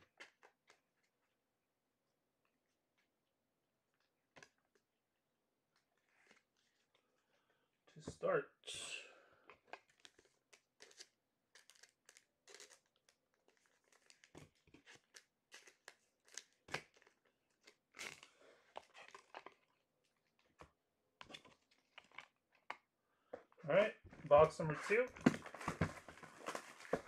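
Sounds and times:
packaging crinkling and tearing: 0:09.8 - 0:20.4, 0:21.3 - 0:22.8, 0:24.8 - 0:27.0.

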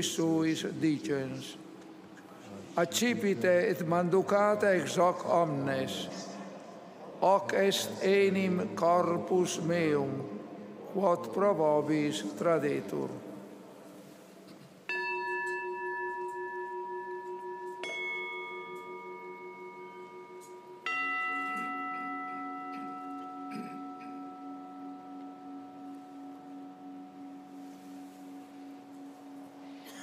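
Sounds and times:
bell ringing: 0:14.9 - 0:30.0.

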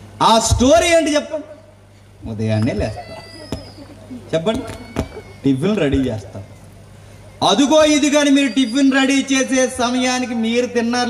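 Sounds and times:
low steady hum: 0:00.0 - 0:11.0
man's amplified voice: 0:00.2 - 0:03.1, 0:05.4 - 0:06.6, 0:07.4 - 0:11.0.

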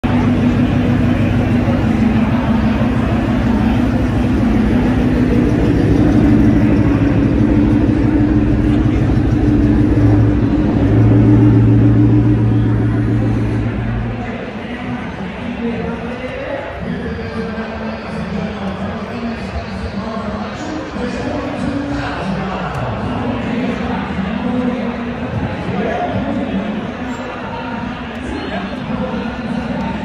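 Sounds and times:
car engine idling: 0:00.0 - 0:14.8.

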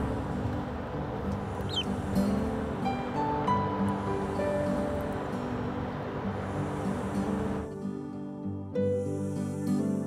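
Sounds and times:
duckling peeping: 0:01.6 - 0:02.0.

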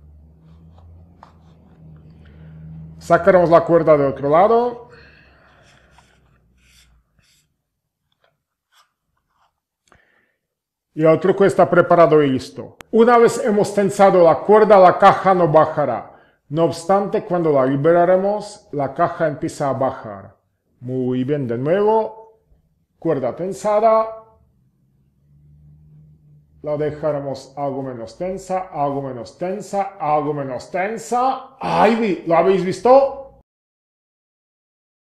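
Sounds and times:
man speaking: 0:03.0 - 0:04.9, 0:11.0 - 0:22.2, 0:23.0 - 0:24.4, 0:26.6 - 0:33.4
faint low hum: 0:22.4 - 0:29.3.

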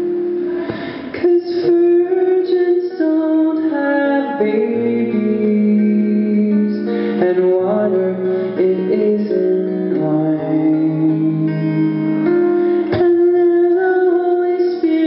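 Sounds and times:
man singing: 0:00.0 - 0:15.0
strummed acoustic guitar: 0:00.0 - 0:15.0.

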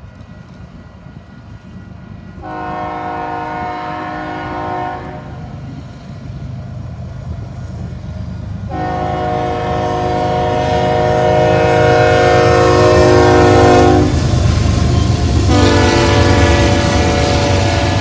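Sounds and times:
train wheel rumble: 0:00.0 - 0:18.0
locomotive air horn: 0:02.4 - 0:05.5, 0:08.7 - 0:14.2, 0:15.4 - 0:18.0.

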